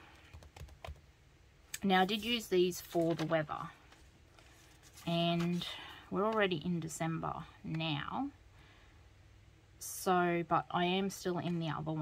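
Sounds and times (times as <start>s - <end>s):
hands handling paper pages: 2.0s - 6.6s.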